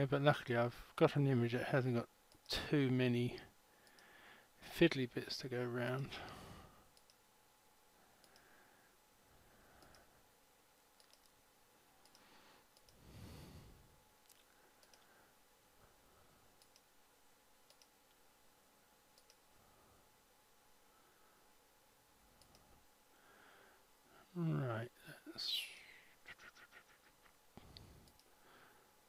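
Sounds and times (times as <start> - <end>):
faint mouse clicks: 3.4 - 4.1, 6.2 - 7.2, 8.2 - 8.5, 9.8 - 10.1, 11.0 - 11.4, 12.0 - 13.0, 14.2 - 15.1, 16.6 - 16.9, 17.6 - 18.2, 19.2 - 19.4, 22.4 - 22.7, 27.6 - 28.3
soft breath: 3.7 - 4.6, 6.1 - 6.9, 8.0 - 10.2, 12.1 - 16.5, 20.8 - 21.6, 23.1 - 24.3, 27.6 - 29.0.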